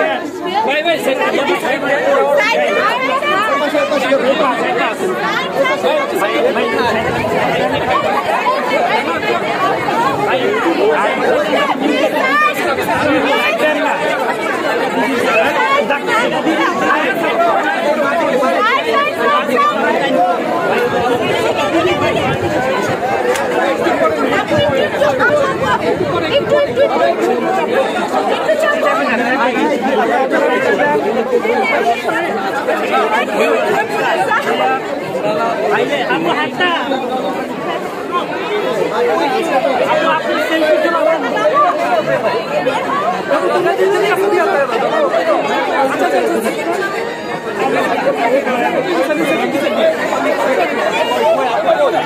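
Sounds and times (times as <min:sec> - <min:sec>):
dense crowd chatter: 0:00.0 - 0:52.0.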